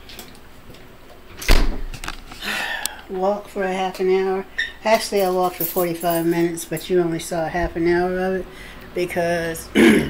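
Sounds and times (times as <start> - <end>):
loud deep thump: 1.5 - 1.9.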